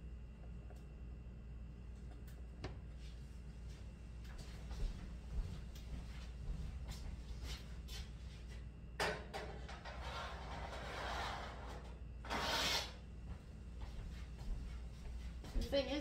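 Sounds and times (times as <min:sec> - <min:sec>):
low room hum: 0:00.0 - 0:16.0.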